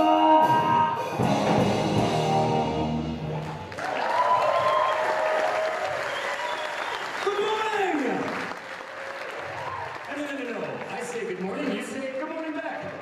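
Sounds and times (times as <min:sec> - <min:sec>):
audience applauding: 0:03.3 - 0:13.0.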